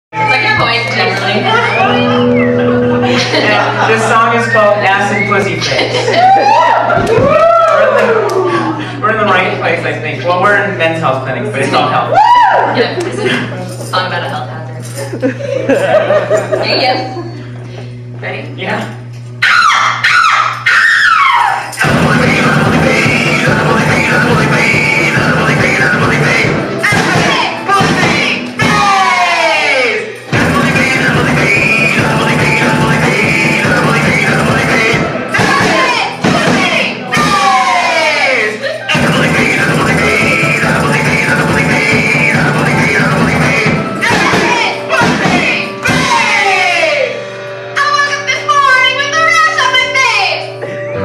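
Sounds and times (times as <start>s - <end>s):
electric guitar: 0.2s - 3.9s, 12.0s - 29.1s, 29.7s - 48.3s, 49.1s - 51.0s
drums: 0.2s - 8.0s, 19.5s - 29.3s, 30.3s - 46.8s
sliding guitar notes falling in pitch: 0.2s - 8.9s
rock band playing: 0.2s - 9.6s, 19.4s - 51.0s
person singing: 21.4s - 47.4s.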